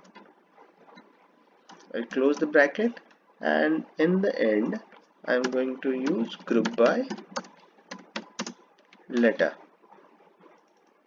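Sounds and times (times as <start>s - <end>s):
computer keyboard typing clicks: 1.0s - 2.5s, 5.0s - 9.4s.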